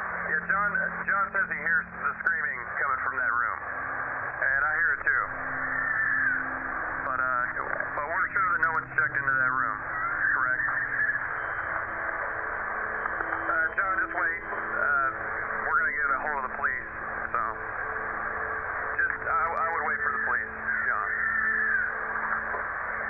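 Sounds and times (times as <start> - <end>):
low hum and hiss: 0.0 - 23.0
voices over two-way radio: 0.2 - 23.0.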